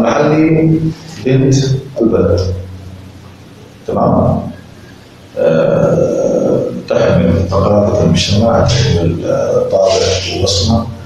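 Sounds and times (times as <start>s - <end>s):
man's drawn-out hesitation sound: 0.0s - 11.0s.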